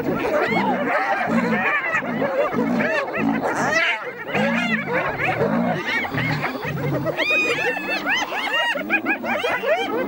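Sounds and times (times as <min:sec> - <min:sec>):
hyenas giggling and squealing: 0:00.0 - 0:10.0
lion growling: 0:00.5 - 0:08.2.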